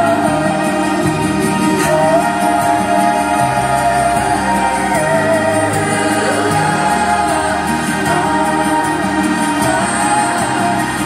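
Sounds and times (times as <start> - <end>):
crowd singing along: 0.0 - 11.0
live pop concert music: 0.0 - 11.0.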